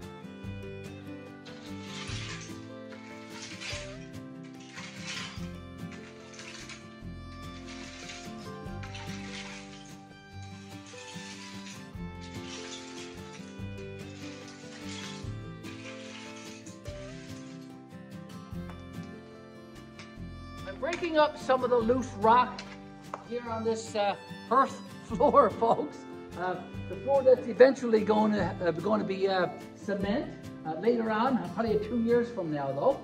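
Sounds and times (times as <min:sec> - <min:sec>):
background music: 0:00.0 - 0:33.0
tool scraping rock across gravel: 0:01.3 - 0:18.0.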